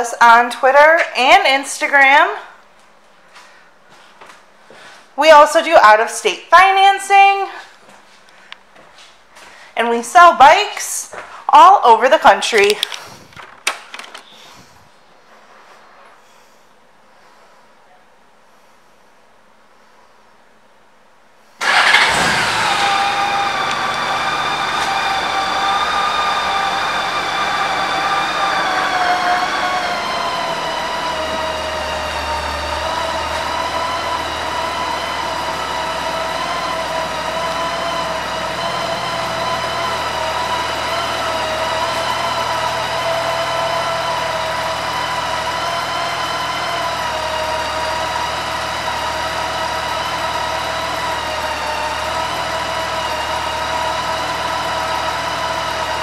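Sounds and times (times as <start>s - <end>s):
motorcycle engine idling: 21.6s - 45.6s
electric starter: 21.6s - 56.0s.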